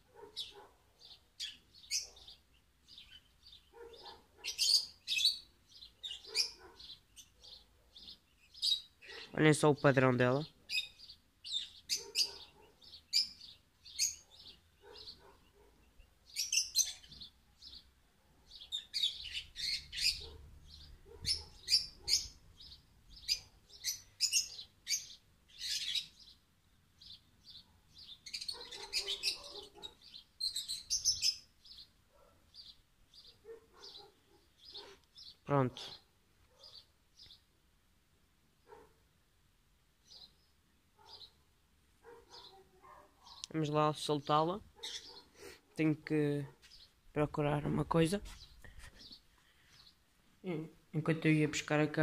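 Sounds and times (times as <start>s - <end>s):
small birds chirping: 0.0s - 52.0s.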